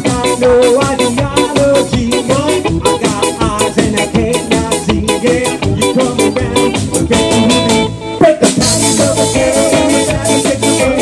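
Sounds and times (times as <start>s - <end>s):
drum kit: 0.0s - 11.0s
live band playing upbeat song: 0.0s - 11.0s.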